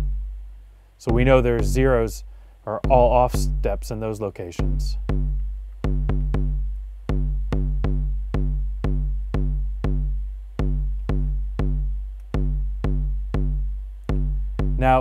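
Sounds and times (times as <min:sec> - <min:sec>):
electronic kick drum hits: 0:00.0 - 0:15.0.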